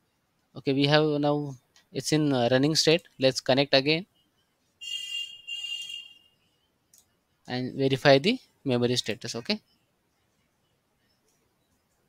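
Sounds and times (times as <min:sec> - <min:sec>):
high-pitched electronic alarm tone: 0:04.2 - 0:06.7.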